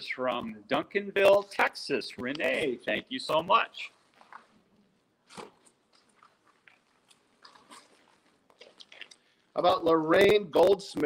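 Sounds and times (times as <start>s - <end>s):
paper envelopes crinkling: 5.3s - 9.3s.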